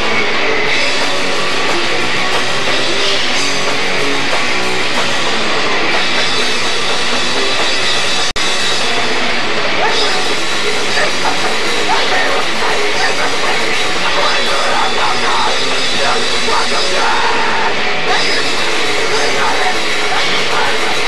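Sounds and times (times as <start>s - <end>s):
rock band playing: 0.0s - 21.0s.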